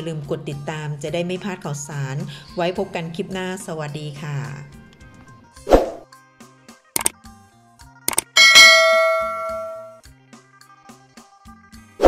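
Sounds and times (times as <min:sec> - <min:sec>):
quick button clicks: 0:08.1 - 0:08.4
bright bell ding: 0:08.3 - 0:10.0.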